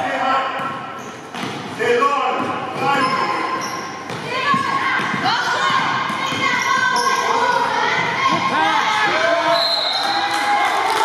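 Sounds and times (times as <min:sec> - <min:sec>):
echoing voices: 0:00.0 - 0:11.0
sneakers squeaking: 0:00.3 - 0:10.3
basketball bouncing: 0:00.6 - 0:01.8, 0:02.4 - 0:08.5.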